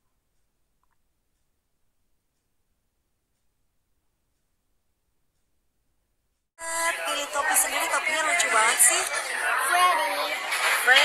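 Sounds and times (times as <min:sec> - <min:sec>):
people talking: 0:06.6 - 0:11.0.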